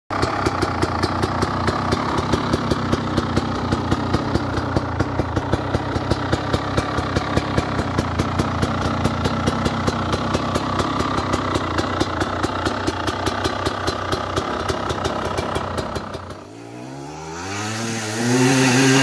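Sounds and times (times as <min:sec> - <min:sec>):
sharp engine ticking: 0:00.1 - 0:16.5
motorcycle engine idling: 0:00.1 - 0:19.0.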